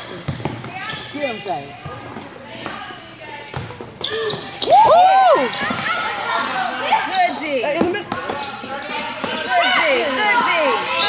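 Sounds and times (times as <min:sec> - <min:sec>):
spectators' voices: 0:00.0 - 0:11.0
basketball bouncing: 0:00.1 - 0:01.1, 0:03.5 - 0:04.4
shoe squeaks: 0:00.2 - 0:01.4, 0:02.5 - 0:04.8, 0:05.4 - 0:11.0.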